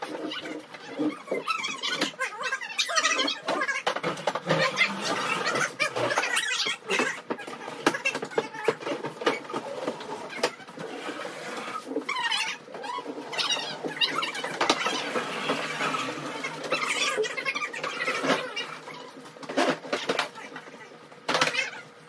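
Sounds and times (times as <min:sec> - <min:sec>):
hand squeaking on wood: 0:00.0 - 0:20.9.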